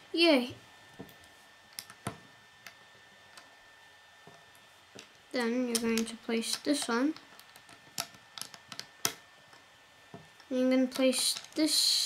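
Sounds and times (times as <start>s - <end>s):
plastic bricks clicking: 5.7s - 9.2s.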